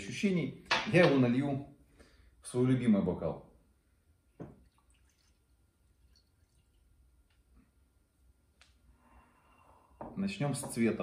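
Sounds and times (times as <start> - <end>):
liquid pouring into a glass: 4.4 - 7.1
faint drips: 4.4 - 7.8.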